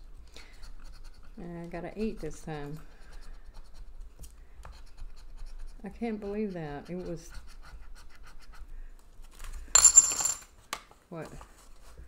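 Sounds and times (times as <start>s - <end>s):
coin clattering down: 9.8s - 10.5s.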